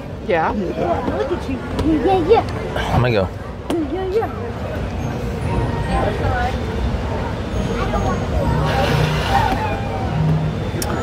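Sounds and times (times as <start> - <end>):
background chatter of people: 0.0 - 11.0.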